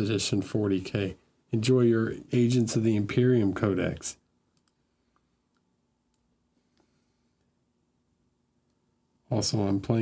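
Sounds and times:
person speaking: 0.0s - 4.4s, 9.2s - 10.0s
faint sharp clicks: 4.5s - 7.5s.

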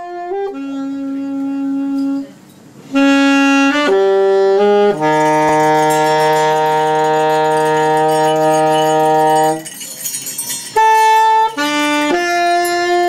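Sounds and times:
alto saxophone: 0.0s - 13.0s
small ensemble improvising: 0.0s - 13.0s.

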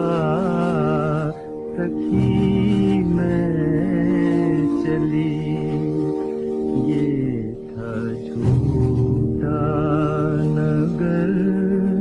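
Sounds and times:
man singing mournful song: 0.0s - 12.0s
orchestral accompaniment: 0.1s - 11.3s.

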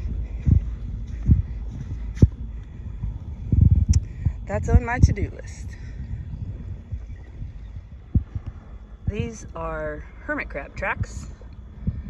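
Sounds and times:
dull low thumps: 0.0s - 12.0s
wind rumble on microphone: 0.0s - 12.0s.

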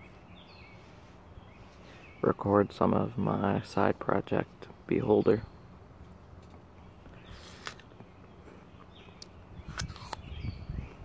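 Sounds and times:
crunching bite of apple: 7.2s - 8.0s, 9.6s - 10.2s.

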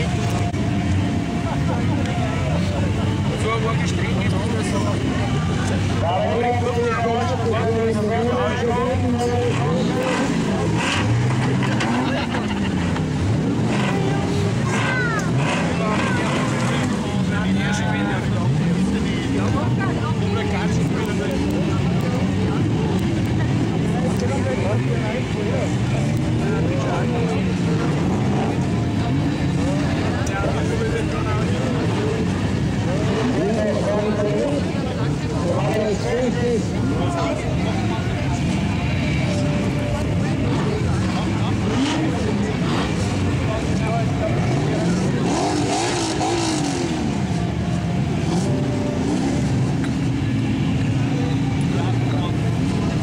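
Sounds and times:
car engines revving hard: 0.0s - 53.0s.

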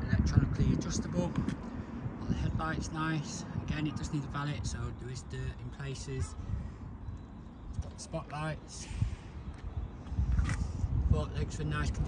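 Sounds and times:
wind buffeting a microphone: 0.0s - 12.0s.

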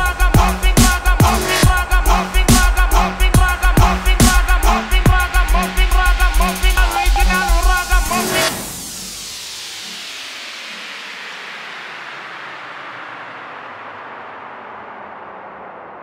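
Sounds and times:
dubstep beat and bass: 0.0s - 12.5s
hissing noise sweep: 0.0s - 16.0s.

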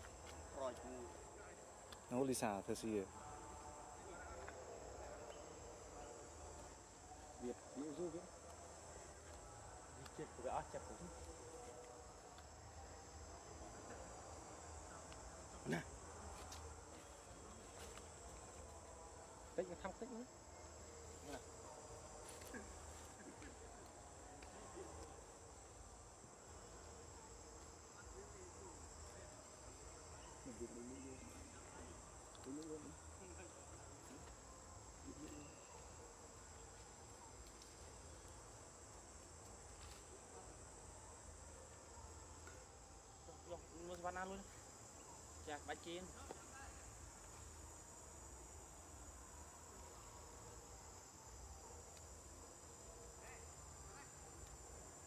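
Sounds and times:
insects droning: 0.0s - 55.0s.

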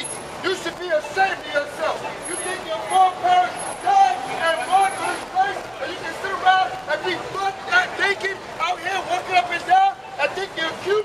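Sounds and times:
people talking and calling out: 0.0s - 11.0s
street traffic passing: 0.0s - 11.0s.

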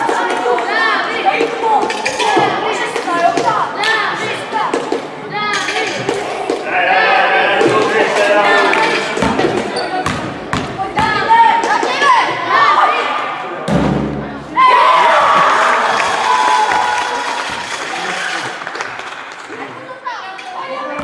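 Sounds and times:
children shouting: 6.6s - 9.1s.

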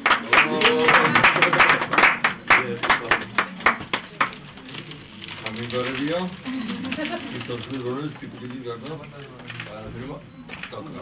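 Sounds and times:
people clapping: 0.0s - 4.8s.

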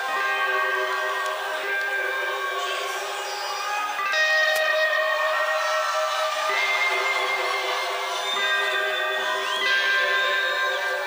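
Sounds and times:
live rock music: 0.0s - 11.0s.

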